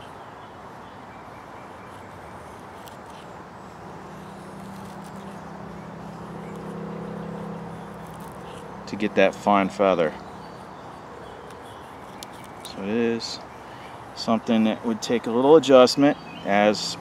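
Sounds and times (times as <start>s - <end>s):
distant vehicle engine hum: 0.0s - 17.0s
knife shaving wood: 1.9s - 3.4s, 4.1s - 6.8s, 7.4s - 8.7s, 11.4s - 12.9s.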